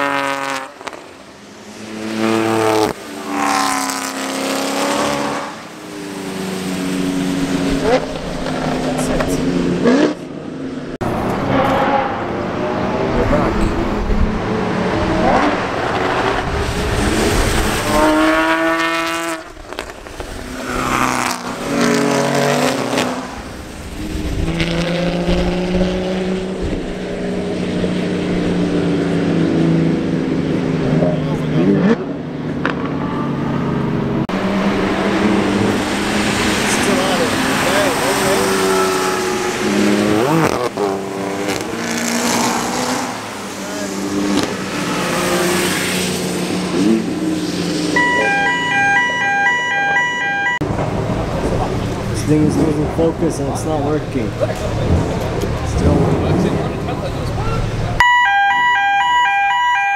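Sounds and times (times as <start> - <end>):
race car engines driving by: 0.0 - 59.9.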